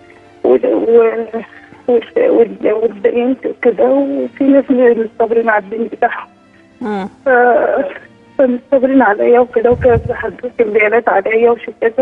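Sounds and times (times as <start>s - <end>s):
woman speaking over telephone: 0.5s - 6.2s, 7.3s - 12.0s.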